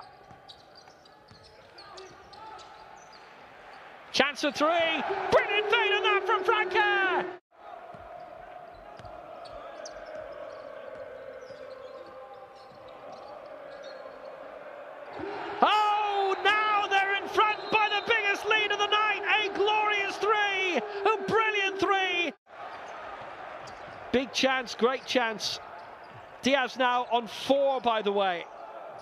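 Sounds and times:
sneaker squeaks on hardwood: 0:00.0 - 0:03.3.

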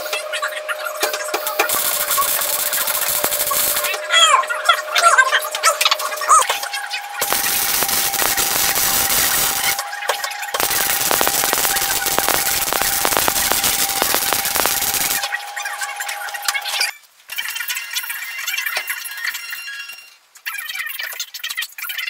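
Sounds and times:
welder arc crackling and spitting: 0:01.4 - 0:04.0, 0:07.2 - 0:09.8, 0:10.5 - 0:15.3.

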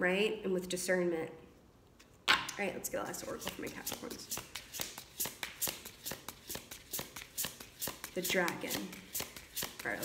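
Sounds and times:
cards being shuffled: 0:03.1 - 0:10.0.

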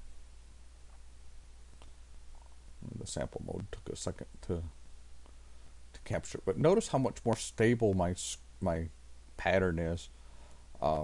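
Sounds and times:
low steady hum: 0:00.0 - 0:11.0
person speaking: 0:02.8 - 0:04.8.

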